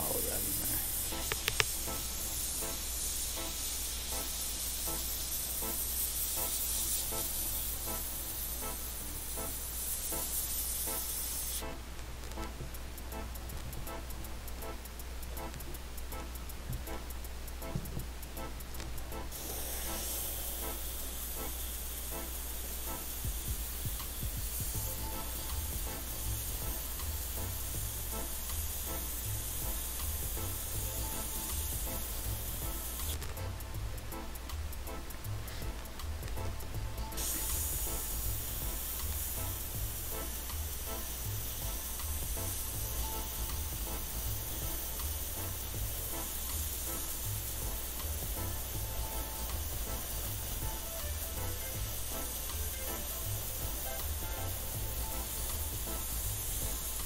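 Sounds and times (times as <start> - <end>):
airbrush spraying hiss: 0.0 - 57.0
background music with bass beat: 0.0 - 57.0.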